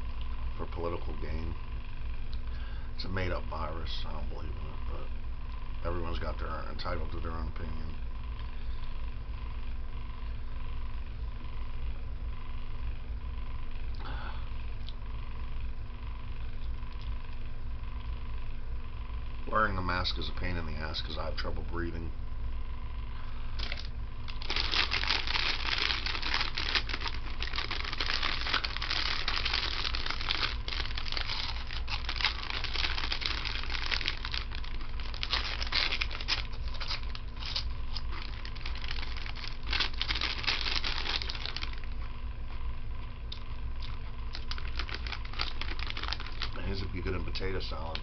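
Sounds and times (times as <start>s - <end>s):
plastic snack bag crinkling: 23.6s - 42.0s, 43.8s - 48.0s.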